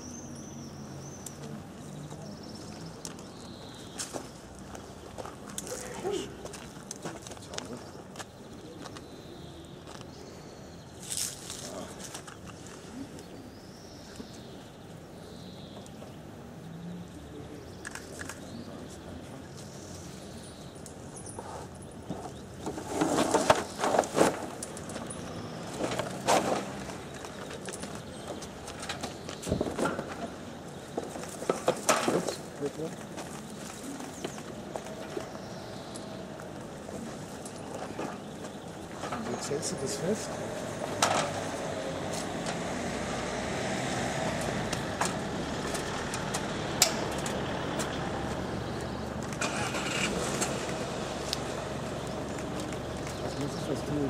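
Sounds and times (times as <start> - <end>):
people talking: 11.6 - 12.1, 32.1 - 33.0, 39.1 - 40.3, 53.2 - 54.0.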